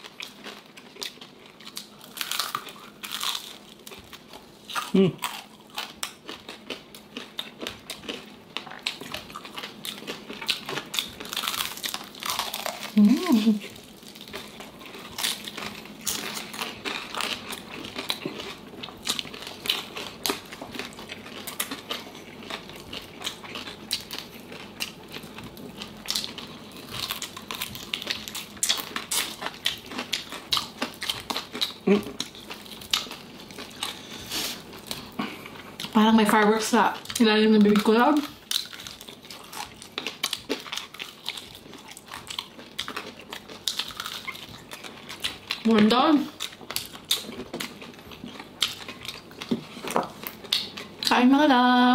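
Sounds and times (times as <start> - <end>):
crispy skin crunching while chewed: 0.0 - 51.2.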